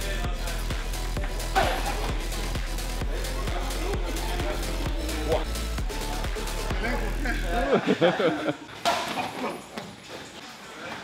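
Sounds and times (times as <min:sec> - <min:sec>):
background music: 0:00.0 - 0:08.6
man laughing: 0:01.5 - 0:02.3, 0:06.9 - 0:09.6.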